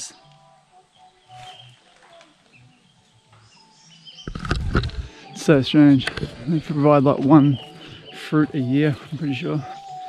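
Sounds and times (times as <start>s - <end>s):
faint bird chirps: 0.0s - 10.0s.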